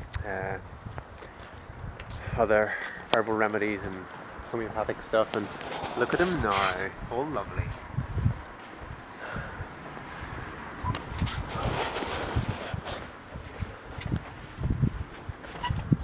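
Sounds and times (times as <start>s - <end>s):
footsteps on tiled floor: 7.8s - 9.0s.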